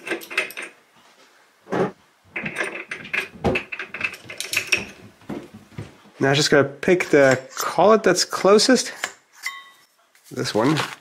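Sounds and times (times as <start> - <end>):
metallic clicks and clanks of tools: 0.0 - 0.8, 2.4 - 5.0.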